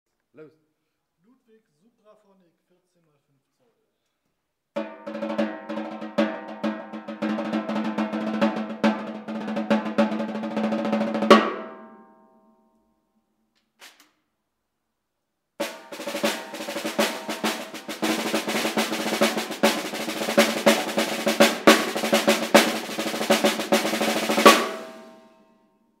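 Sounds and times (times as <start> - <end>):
snare drum rolls and strokes: 4.8 - 11.9, 15.6 - 25.3.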